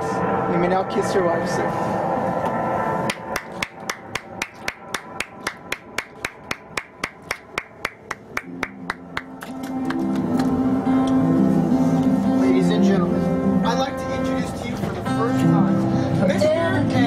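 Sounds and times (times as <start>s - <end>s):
hands clapping in rhythm: 3.4s - 10.0s
music: 4.9s - 17.0s.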